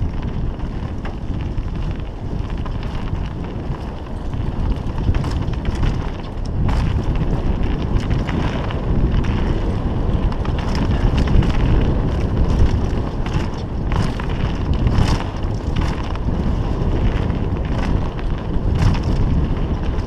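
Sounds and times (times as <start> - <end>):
bike clicks and rattles: 0.0 - 20.0
tyre rumble: 0.0 - 20.0
wind buffeting microphone: 0.0 - 20.0.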